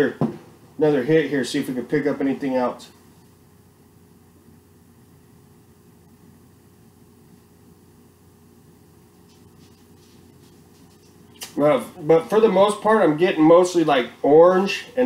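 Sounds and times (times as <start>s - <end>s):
room hum with low tones: 0.0s - 15.0s.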